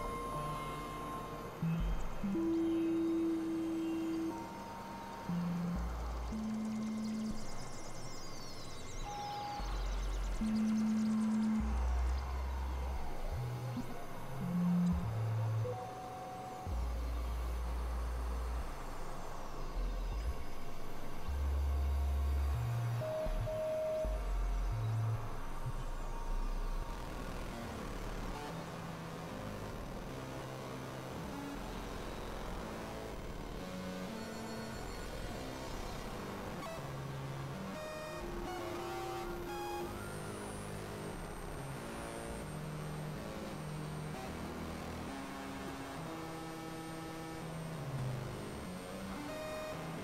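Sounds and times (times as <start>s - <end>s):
experimental synthesizer music: 0.0s - 50.0s.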